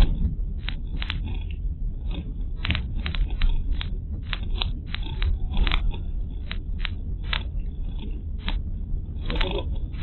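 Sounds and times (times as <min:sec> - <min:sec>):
car road rumble: 0:00.0 - 0:10.0
sharp clicks and rattles: 0:00.0 - 0:10.0.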